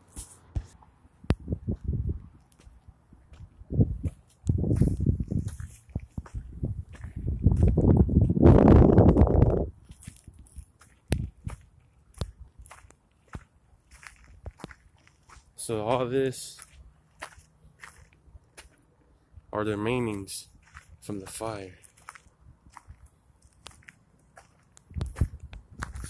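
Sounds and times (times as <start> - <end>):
footsteps crunching on dirt: 1.4 - 18.8, 19.7 - 26.0.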